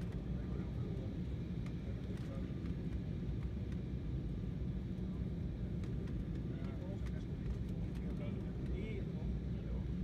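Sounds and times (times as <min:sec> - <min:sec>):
jet airliner cabin rumble: 0:00.0 - 0:10.0.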